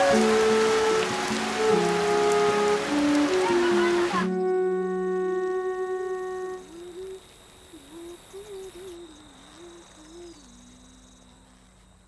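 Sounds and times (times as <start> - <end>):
person humming a melody: 0.0 - 11.4
insect-like chirring: 3.7 - 12.0.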